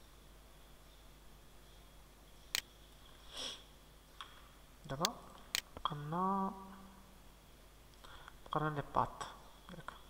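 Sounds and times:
person sniffing: 3.2s - 3.7s.

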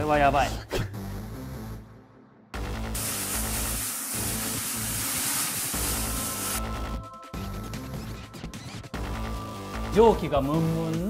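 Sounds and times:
background music: 0.0s - 11.0s
loud steady hiss: 3.0s - 6.6s.

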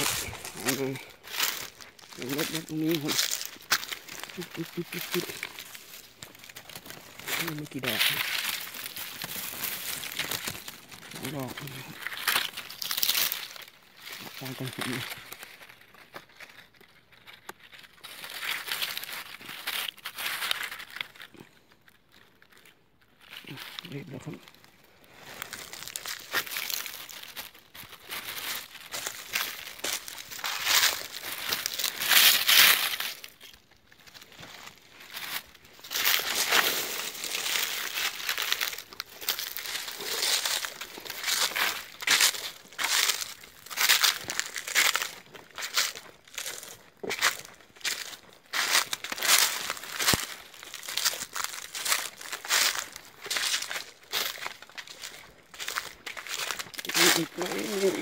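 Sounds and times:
footsteps crunching dry leaves: 0.0s - 58.0s.

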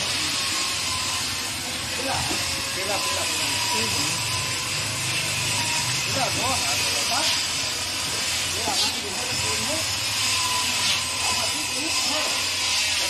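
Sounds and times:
loud hiss: 0.0s - 13.0s.

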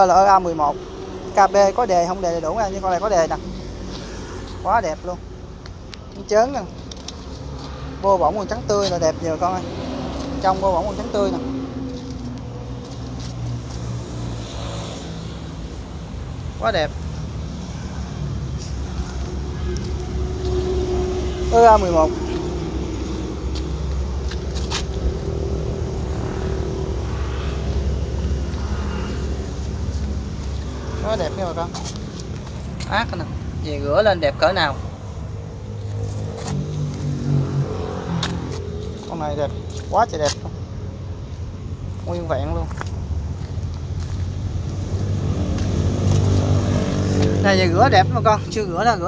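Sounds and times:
engine humming: 0.0s - 49.0s.

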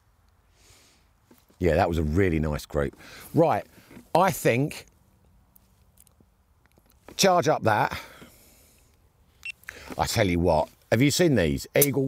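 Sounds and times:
intake of breath: 0.5s - 1.2s, 3.0s - 4.0s, 8.0s - 9.0s, 9.6s - 10.0s
man speaking: 1.6s - 4.9s, 10.0s - 12.0s.

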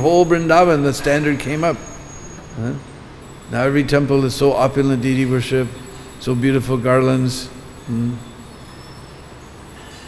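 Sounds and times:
speech: 0.0s - 1.8s, 2.6s - 2.9s, 3.5s - 8.3s
faint high whine: 0.0s - 10.0s
room noise hiss: 0.0s - 10.0s.

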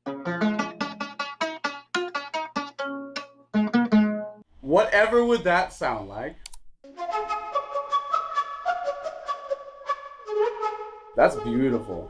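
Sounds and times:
synthesized flute notes: 6.9s - 12.0s.

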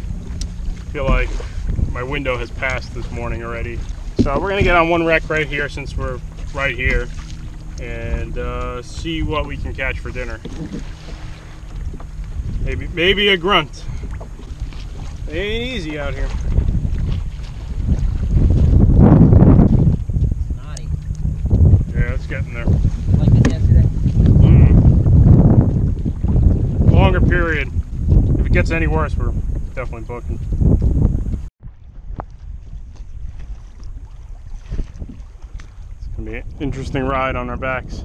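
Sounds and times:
water lapping against kayak hull: 0.0s - 38.0s
wind buffeting microphone: 0.0s - 38.0s.

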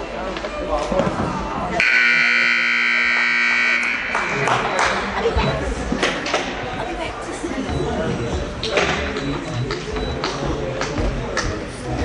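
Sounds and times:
scoreboard buzzer blast: 1.8s - 4.9s.

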